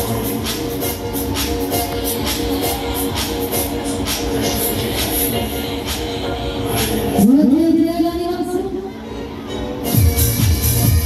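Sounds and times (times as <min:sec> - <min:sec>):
dance music from speakers: 0:00.0 - 0:11.0.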